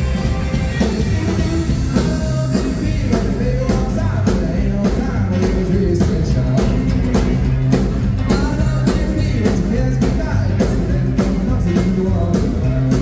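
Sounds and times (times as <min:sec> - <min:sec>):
drum backbeat: 0:00.0 - 0:13.0
rockabilly band with vocals: 0:00.0 - 0:13.0.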